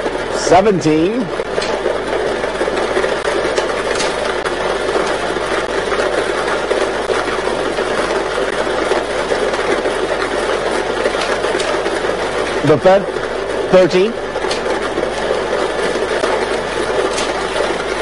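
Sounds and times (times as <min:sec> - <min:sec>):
machine whirring: 0:00.0 - 0:18.0.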